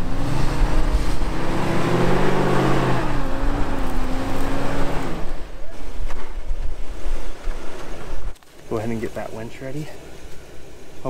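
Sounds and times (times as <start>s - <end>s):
truck engine under load: 0.0s - 6.4s
wind rumble on microphone: 0.0s - 8.4s.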